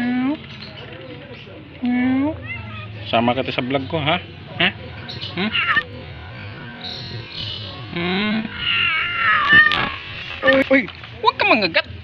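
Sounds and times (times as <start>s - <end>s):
cat meowing: 2.4s - 3.0s, 5.4s - 5.9s, 8.4s - 10.6s.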